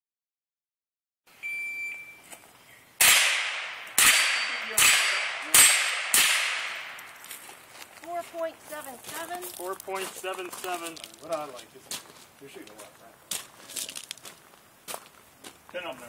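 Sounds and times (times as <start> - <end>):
shot timer beep: 1.4 - 2.2
gunshots with echo: 3.0 - 7.1.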